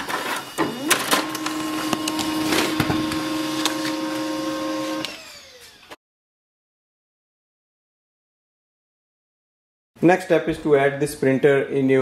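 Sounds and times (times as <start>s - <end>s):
printer humming: 0.0s - 5.2s.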